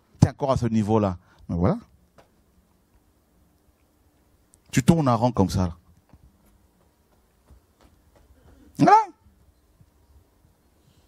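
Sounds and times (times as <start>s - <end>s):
man speaking into a microphone: 0.2s - 1.9s, 4.7s - 5.8s, 8.7s - 9.2s.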